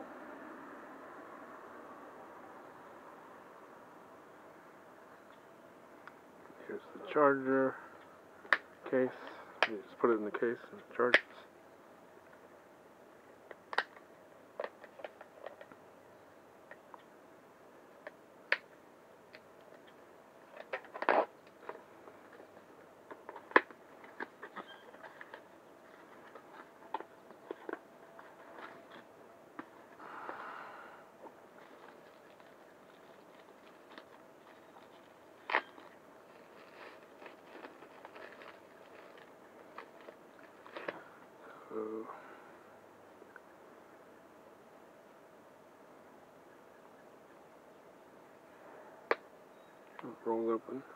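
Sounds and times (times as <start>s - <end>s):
cardboard packaging rustling: 20.4s - 30.0s, 31.3s - 41.0s.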